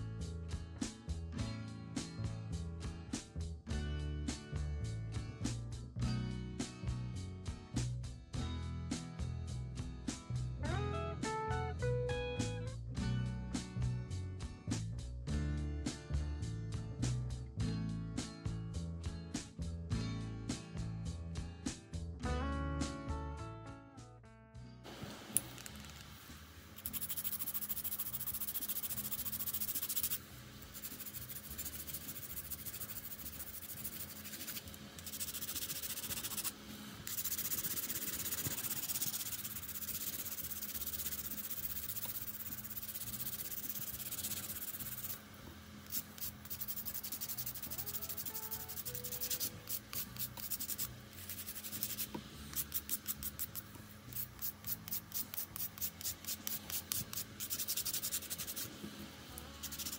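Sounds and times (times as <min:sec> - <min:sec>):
nail file rubbing on plastic: 0:26.8 - 0:45.2, 0:45.8 - 0:58.7, 0:59.6 - 0:59.9.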